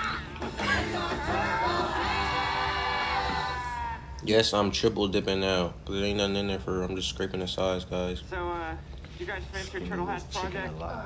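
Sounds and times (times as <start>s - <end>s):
music bed: 0.0s - 3.7s.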